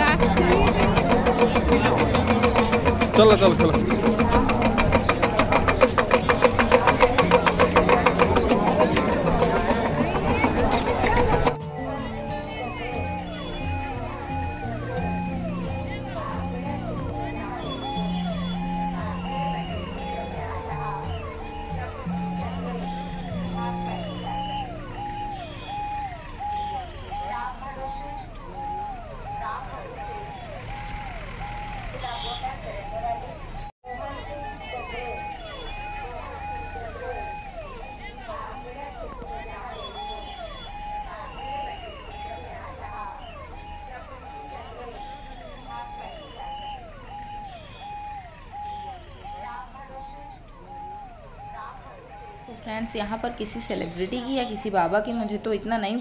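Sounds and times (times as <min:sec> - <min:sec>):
crowd chatter: 0:00.0 - 0:56.0
electronic vehicle siren wailing: 0:00.0 - 0:56.0.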